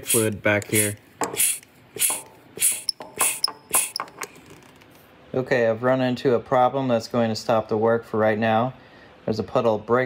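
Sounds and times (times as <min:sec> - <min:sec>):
brake bleeder pump hissing: 0:00.0 - 0:04.4.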